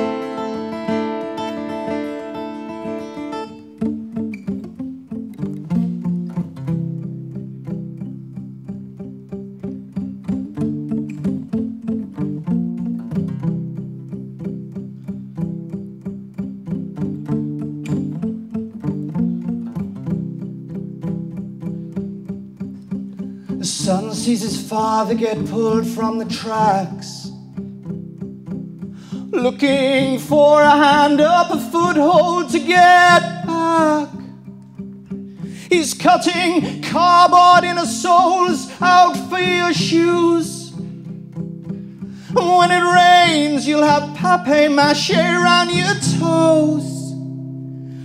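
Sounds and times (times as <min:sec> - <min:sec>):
acoustic guitar playing: 0:00.0 - 0:48.0.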